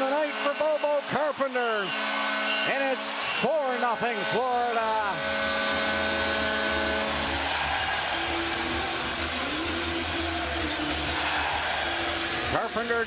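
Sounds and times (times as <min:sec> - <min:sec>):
arena crowd cheering: 0:00.0 - 0:13.0.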